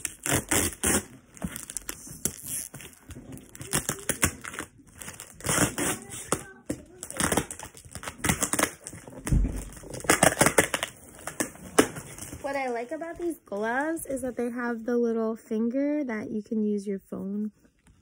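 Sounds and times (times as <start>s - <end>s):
packing tape crinkling and tearing: 0.0s - 12.4s.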